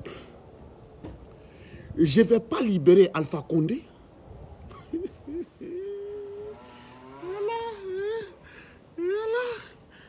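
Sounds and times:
man's high wordless vocal: 0:04.9 - 0:09.9.

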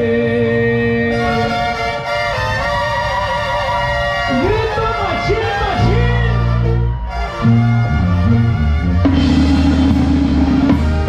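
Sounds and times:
brass band chords: 0:00.0 - 0:11.0
tuba and percussion pulse: 0:00.0 - 0:11.0.

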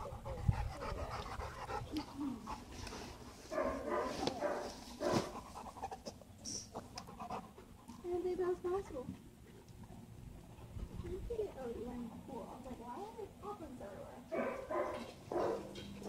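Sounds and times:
dogs panting: 0:00.0 - 0:16.0.

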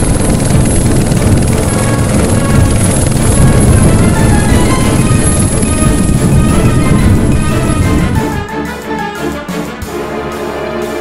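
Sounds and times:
propeller aircraft engines droning: 0:00.0 - 0:11.0.

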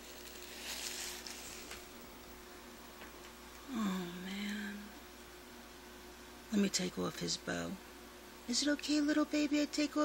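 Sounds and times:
steady faint hum: 0:00.0 - 0:10.0
faint rustling of hands: 0:00.1 - 0:01.9.

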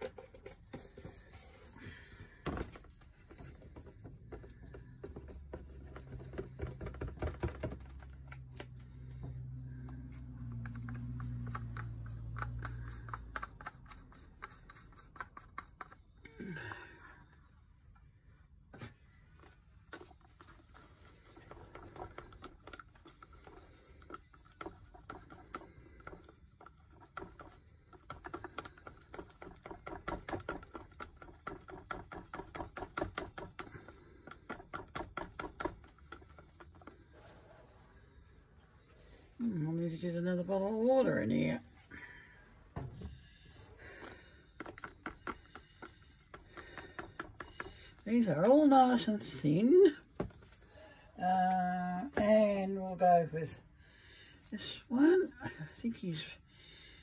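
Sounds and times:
stick stirring paint in cup: 0:00.0 - 0:42.1, 0:42.8 - 0:57.0.

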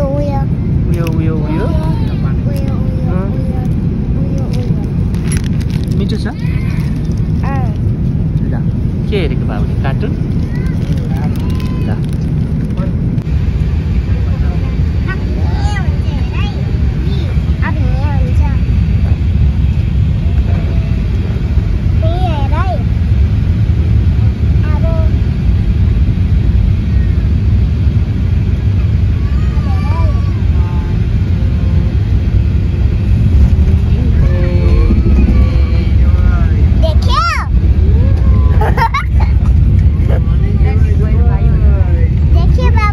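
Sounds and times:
airliner cabin low rumble: 0:00.0 - 0:42.9
child chattering: 0:10.4 - 0:11.8.

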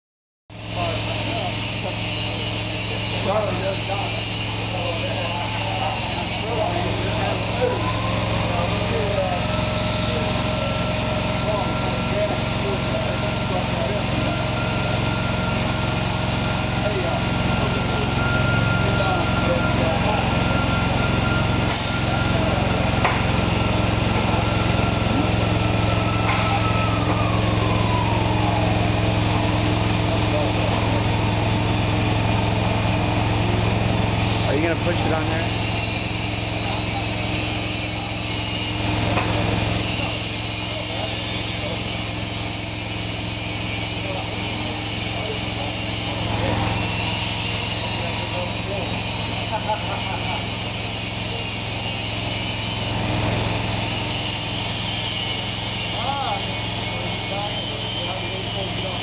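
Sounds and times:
high hydraulic whine: 0:00.5 - 0:59.0
hydraulic cart running: 0:00.5 - 0:59.0.

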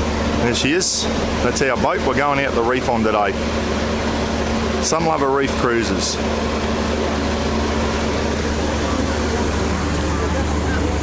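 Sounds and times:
boat engines humming: 0:00.0 - 0:11.0.

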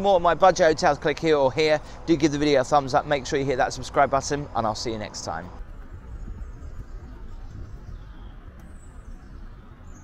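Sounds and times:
steady low rumble: 0:00.0 - 0:10.0
faint high bird chirps: 0:06.0 - 0:10.0.

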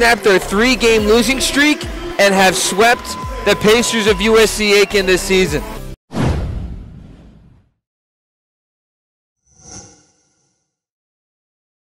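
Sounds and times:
whoosh and hit effect: 0:06.1 - 0:07.7.

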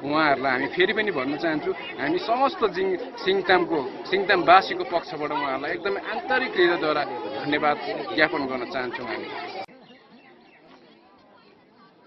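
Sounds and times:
man speaking: 0:00.0 - 0:09.3
crowd chatter: 0:00.0 - 0:12.0.

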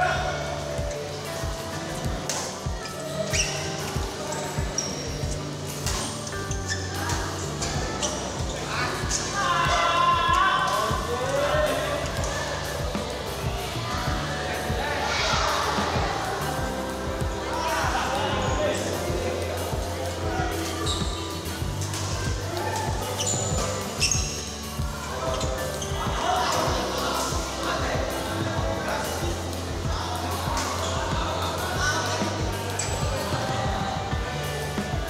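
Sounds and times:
players calling out: 0:00.0 - 0:35.0
shoes on court floor: 0:00.1 - 0:35.0
racket hitting shuttlecock: 0:05.8 - 0:06.2.

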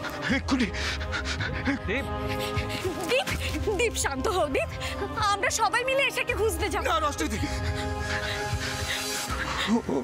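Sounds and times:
man panting: 0:00.0 - 0:02.9, 0:07.4 - 0:10.0
dramatic background score: 0:00.0 - 0:10.0.

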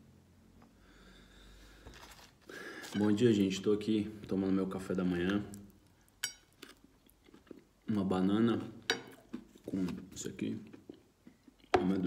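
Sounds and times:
granola crunching while chewed: 0:06.5 - 0:07.8.

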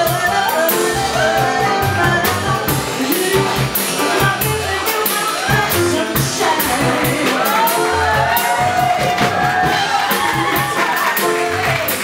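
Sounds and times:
drums with cymbal strokes: 0:00.0 - 0:12.0
piano: 0:00.0 - 0:12.0
people shouting and whooping: 0:07.3 - 0:11.3.

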